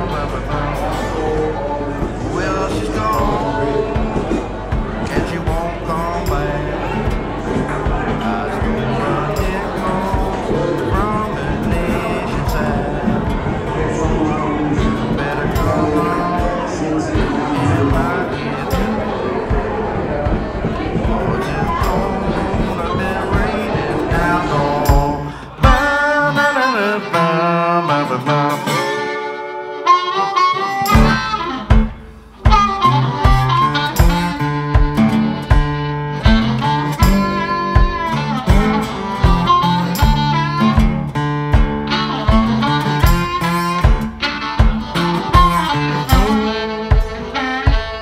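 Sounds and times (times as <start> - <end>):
guitar: 0.0 - 48.0
steady kick drum beat: 3.1 - 26.1, 30.9 - 48.0
harmonica playing bent notes: 20.4 - 48.0.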